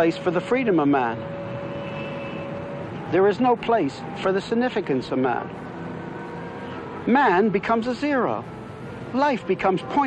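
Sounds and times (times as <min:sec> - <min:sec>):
traffic jam noise: 0:00.0 - 0:10.0.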